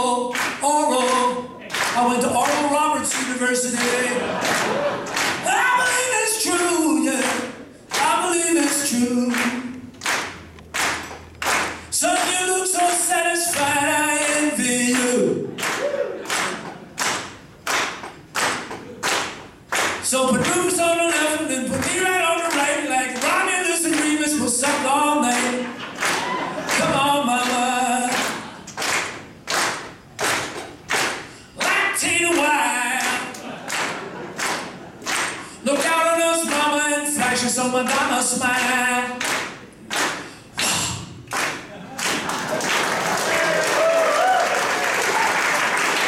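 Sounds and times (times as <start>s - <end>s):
man singing unaccompanied: 0.0s - 4.4s, 5.4s - 9.9s, 11.9s - 15.6s, 20.0s - 25.8s, 26.7s - 28.6s, 31.6s - 33.5s, 35.6s - 39.4s
slow hand claps: 0.3s - 6.0s, 7.2s - 13.6s, 14.2s - 21.2s, 21.8s - 35.9s, 38.6s - 46.0s.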